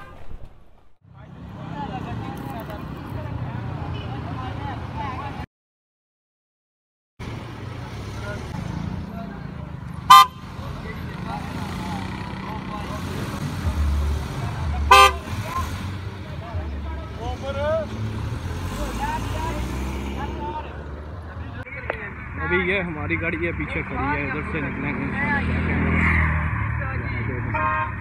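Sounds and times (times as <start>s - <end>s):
rumble of cars moving: 0.0s - 5.5s, 7.2s - 28.0s
car horn toots: 10.1s - 10.5s, 14.9s - 15.8s.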